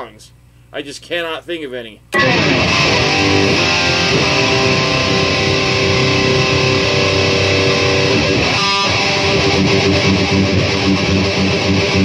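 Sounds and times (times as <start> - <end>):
loud electric guitar: 2.2 - 12.0.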